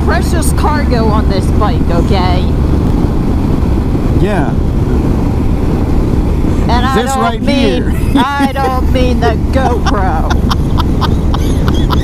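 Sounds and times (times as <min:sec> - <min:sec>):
motorcycle engine at highway speed: 0:00.0 - 0:12.0
wind rushing: 0:00.0 - 0:12.0.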